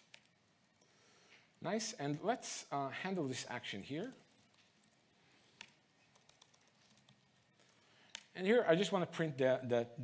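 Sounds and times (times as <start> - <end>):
laptop keyboard typing: 0.0 - 0.4, 4.0 - 8.3.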